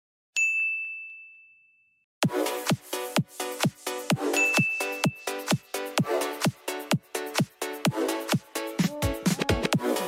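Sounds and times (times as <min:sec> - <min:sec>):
bell-like ding: 0:00.4 - 0:02.0, 0:04.4 - 0:05.3.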